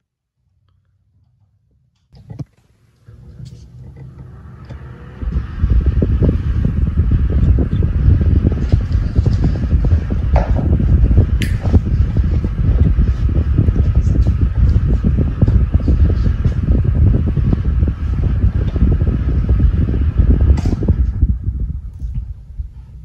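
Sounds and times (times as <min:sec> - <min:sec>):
desk fan spinning up: 0:00.8 - 0:23.0
buffeting wind noise: 0:03.2 - 0:23.0
fan switch click: 0:11.4 - 0:11.8.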